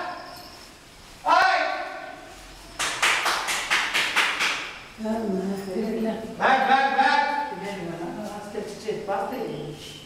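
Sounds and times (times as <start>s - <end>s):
sharp hand claps: 2.8s - 4.8s.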